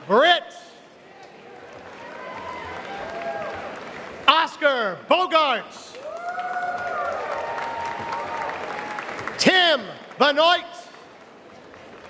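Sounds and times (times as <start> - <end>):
audience cheering: 1.5 - 4.5, 5.9 - 10.4
audience applauding: 1.6 - 4.5, 5.9 - 12.0.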